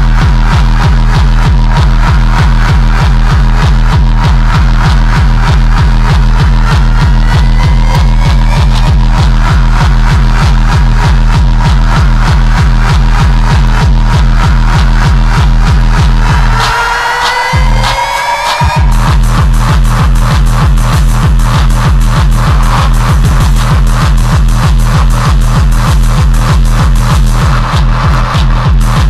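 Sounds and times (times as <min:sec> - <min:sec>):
hard drum and bass music: 0:00.0 - 0:29.0
rising synth sweeps: 0:16.1 - 0:19.7.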